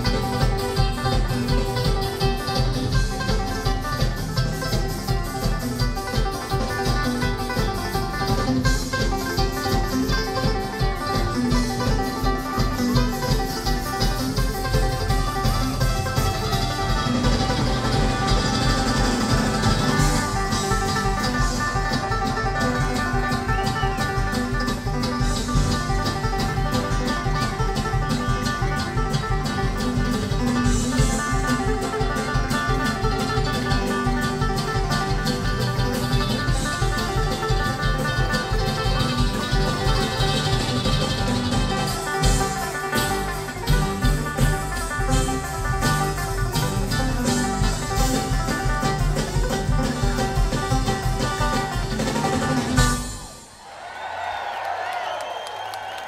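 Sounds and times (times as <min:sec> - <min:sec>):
bluegrass string band playing: 0:00.0 - 0:54.1.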